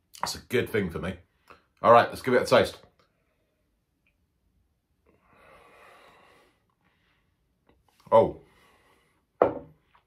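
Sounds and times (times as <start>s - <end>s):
faint soft breath out: 5.1s - 7.4s.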